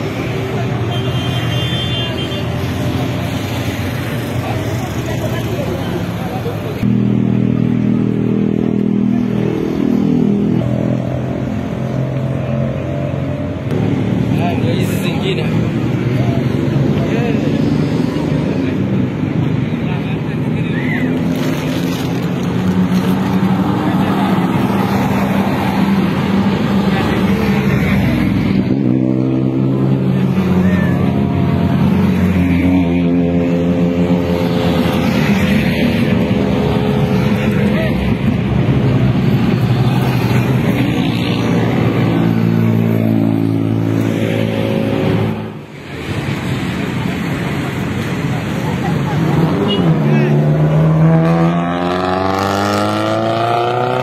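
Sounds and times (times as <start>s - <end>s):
people's voices: 0.0s - 13.0s, 13.8s - 54.0s
rally cars driving past: 13.6s - 54.0s.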